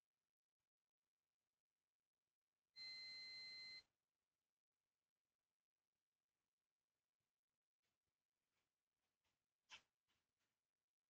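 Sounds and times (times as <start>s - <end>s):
electronic beep: 2.8s - 3.8s.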